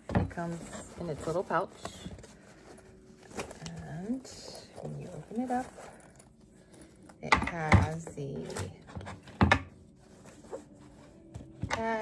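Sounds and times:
fabric rustling: 0:00.0 - 0:07.1, 0:07.9 - 0:12.0.

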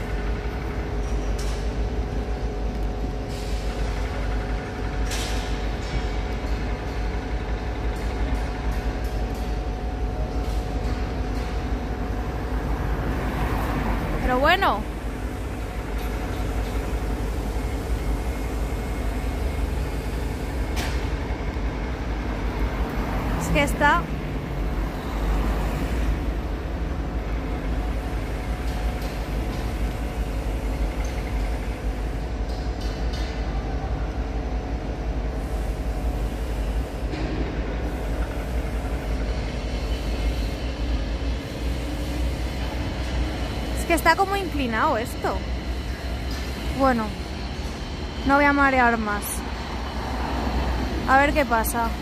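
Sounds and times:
construction machinery hum: 0:00.0 - 0:52.0.

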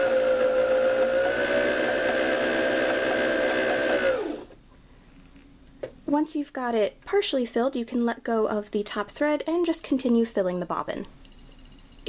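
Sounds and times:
sewing machine motor whine: 0:00.0 - 0:04.5.

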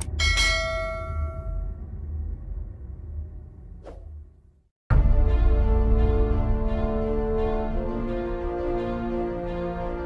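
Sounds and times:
background music: 0:04.9 - 0:10.0.

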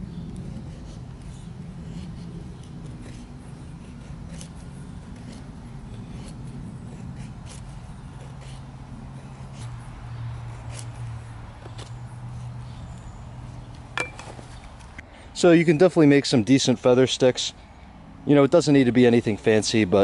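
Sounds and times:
knife shaving wood: 0:00.0 - 0:13.7
steady low hum: 0:00.0 - 0:20.0.

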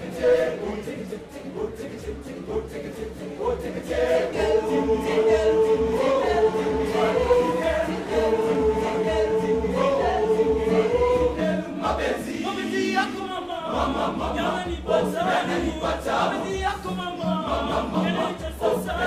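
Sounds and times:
boys' choir singing a cappella: 0:00.0 - 0:19.0.

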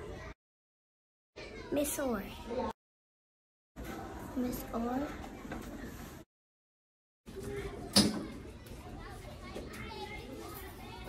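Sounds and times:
children chattering: 0:00.0 - 0:00.4, 0:01.4 - 0:02.8, 0:07.3 - 0:11.0.

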